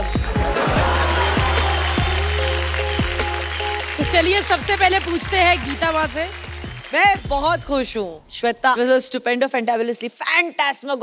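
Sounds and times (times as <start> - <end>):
background music with deep bass: 0.0 - 7.9
audience clapping: 0.0 - 8.2.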